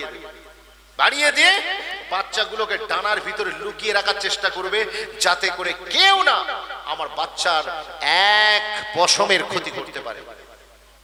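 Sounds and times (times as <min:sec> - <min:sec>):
man preaching through microphone: 0:00.0 - 0:10.8.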